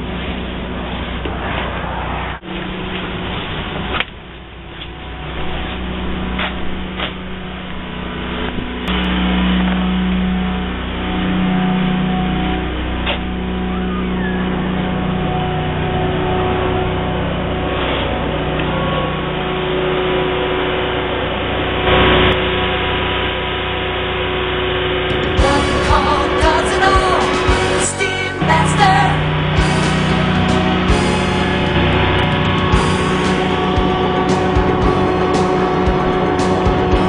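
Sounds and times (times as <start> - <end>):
vacuum engine drone: 0.0 - 37.0
music: 25.1 - 37.0.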